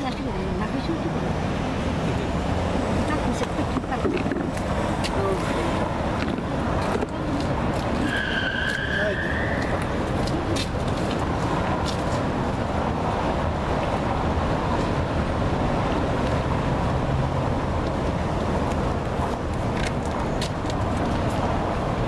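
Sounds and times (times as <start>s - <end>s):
street traffic rumble: 0.0s - 22.0s.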